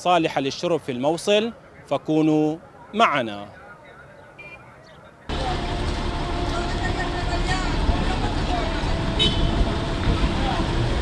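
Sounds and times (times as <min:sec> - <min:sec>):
truck engine idling: 0:05.3 - 0:11.0.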